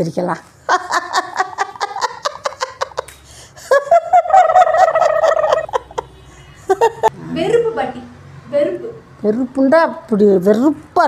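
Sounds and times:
woman laughing high-pitched: 0:00.7 - 0:06.1.

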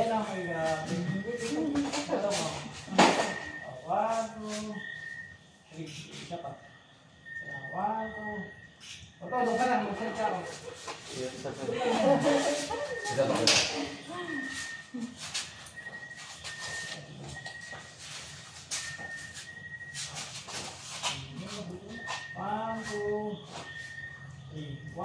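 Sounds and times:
faint high steady tone: 0:00.0 - 0:25.0.

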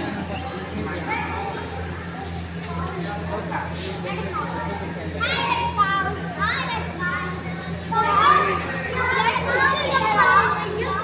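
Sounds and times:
children chattering and calling: 0:00.0 - 0:11.0.

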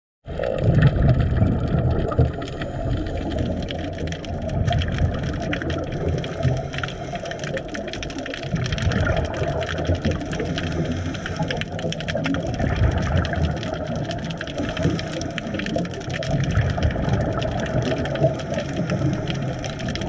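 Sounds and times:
faint underwater clicks and crackles: 0:00.2 - 0:20.0
low underwater rumble: 0:00.3 - 0:20.0.

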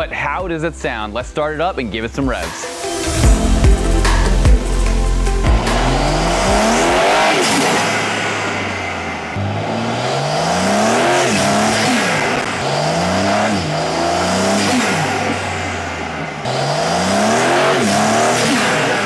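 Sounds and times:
car engine accelerating hard: 0:02.9 - 0:19.0.

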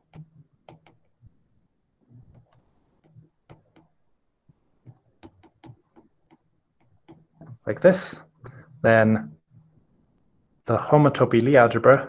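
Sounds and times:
stylus tapping on glass screen: 0:00.1 - 0:01.1, 0:02.3 - 0:04.0, 0:04.8 - 0:07.6.

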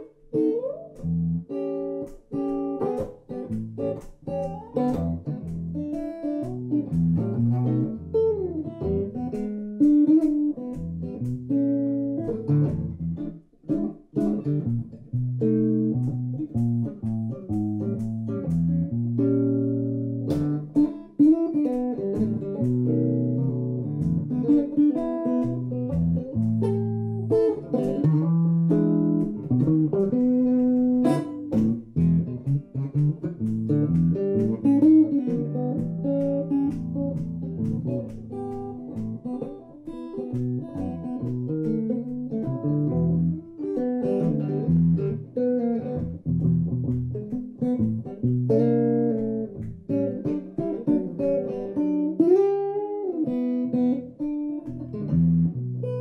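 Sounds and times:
solo jazz guitar: 0:00.0 - 0:56.0.

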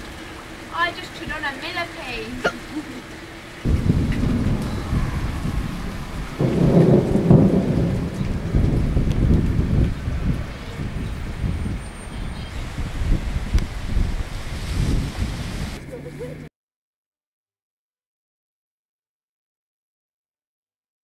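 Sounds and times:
rain hissing: 0:00.0 - 0:16.5
thunder rumbling: 0:03.6 - 0:15.8.

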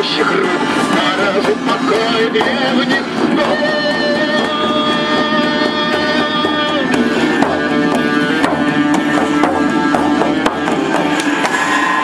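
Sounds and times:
accordion: 0:00.0 - 0:11.4
electric guitar: 0:00.0 - 0:12.0
hand drums: 0:00.0 - 0:12.0.

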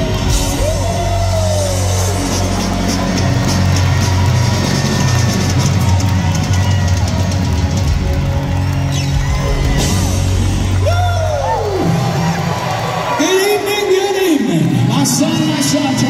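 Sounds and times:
live rock band playing loudly: 0:00.0 - 0:12.8.

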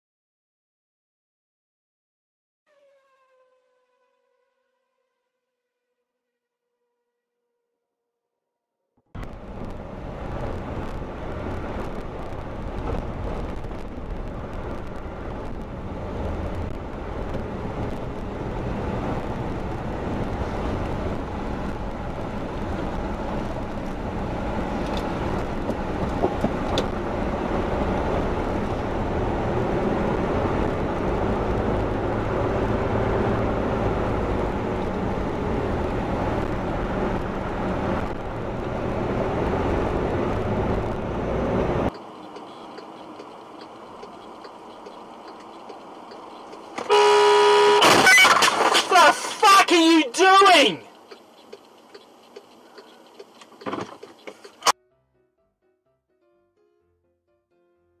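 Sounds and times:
vehicle engine and road noise: 0:09.0 - 0:54.8.

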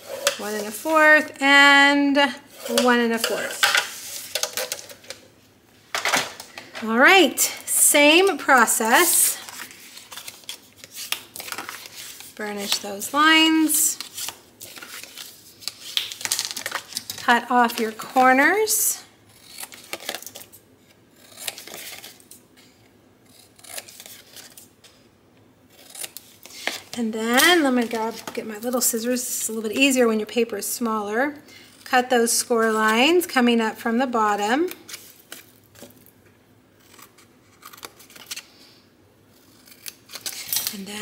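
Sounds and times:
scissors snipping paper: 0:21.2 - 0:22.4.

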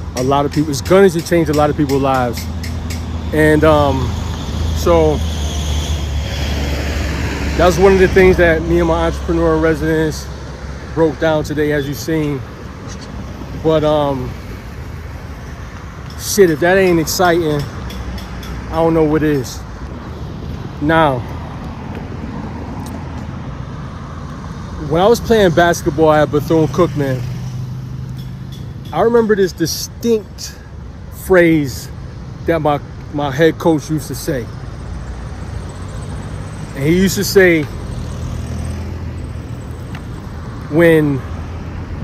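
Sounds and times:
cars passing on road: 0:00.0 - 0:42.0
city rumble: 0:00.0 - 0:42.0
man speaking: 0:18.7 - 0:19.7, 0:20.8 - 0:21.3, 0:36.8 - 0:37.7, 0:40.7 - 0:41.3.

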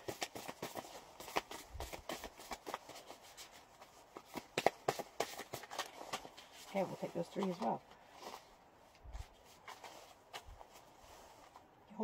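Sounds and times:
cards clicking and rustling: 0:00.0 - 0:08.4.

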